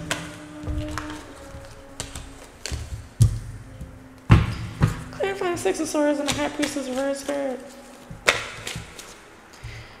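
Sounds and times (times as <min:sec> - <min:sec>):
cards knocking on hard tabletop: 0:08.1 - 0:09.1.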